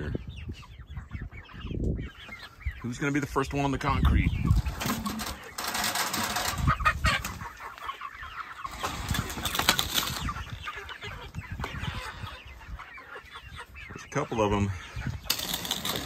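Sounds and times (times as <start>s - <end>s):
chickens clucking: 0.0s - 16.0s
wings flapping: 8.8s - 10.4s.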